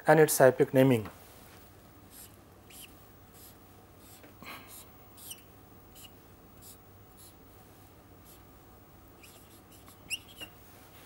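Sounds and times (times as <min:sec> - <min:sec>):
marker pen squeaking on board: 0:02.1 - 0:07.4, 0:09.2 - 0:10.5.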